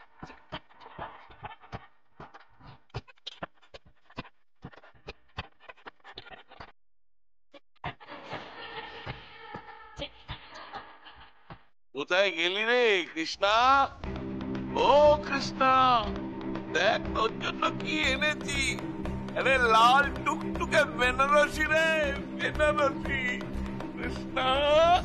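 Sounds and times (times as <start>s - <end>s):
people laughing and giggling: 7.9s - 11.6s.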